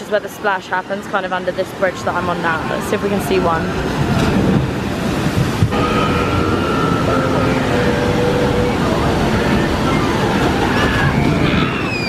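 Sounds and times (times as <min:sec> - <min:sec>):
water rushing into splash pool: 0:01.7 - 0:12.0.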